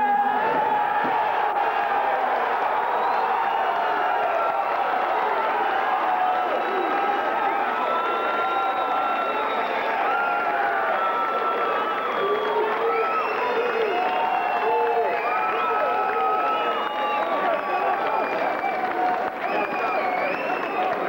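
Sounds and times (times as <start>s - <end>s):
crowd cheering and shouting: 0.0s - 21.0s.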